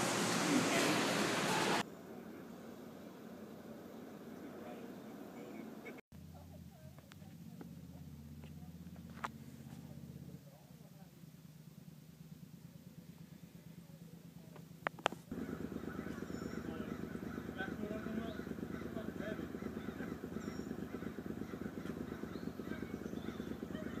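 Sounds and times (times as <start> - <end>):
faint voices: 15.4 - 24.0.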